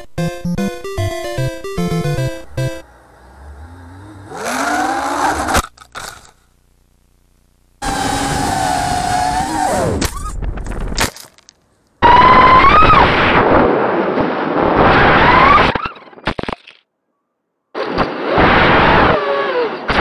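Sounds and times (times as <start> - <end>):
quadcopter motors whining: 2.8 - 6.3, 7.8 - 10.3.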